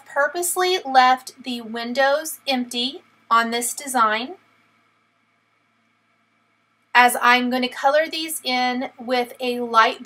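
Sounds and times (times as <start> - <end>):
woman's voice: 0.0 - 4.5, 7.0 - 10.0
faint high hum: 0.0 - 10.0.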